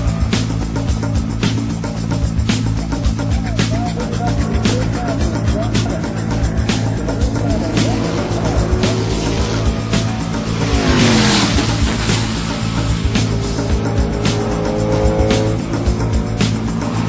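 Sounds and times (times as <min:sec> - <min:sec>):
background music with steady beat: 0:00.0 - 0:17.0
racing car engine: 0:00.0 - 0:17.0
car passing by: 0:07.8 - 0:15.6.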